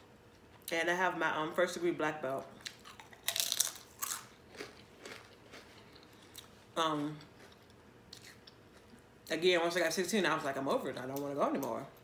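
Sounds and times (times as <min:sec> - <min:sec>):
crunching potato chip: 0:02.6 - 0:06.5.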